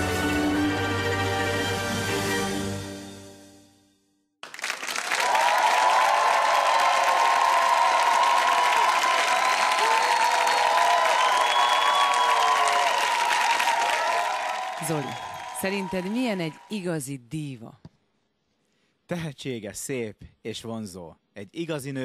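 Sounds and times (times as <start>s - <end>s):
audience applauding: 4.4s - 17.1s.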